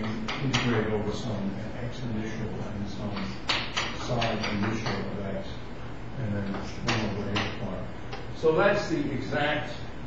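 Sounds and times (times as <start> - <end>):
man speaking indistinctly: 0.0 - 9.9.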